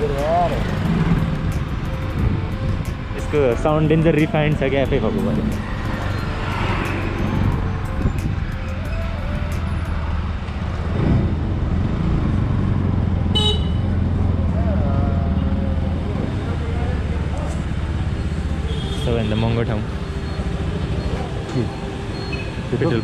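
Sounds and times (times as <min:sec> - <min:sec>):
town traffic: 0:00.0 - 0:23.0.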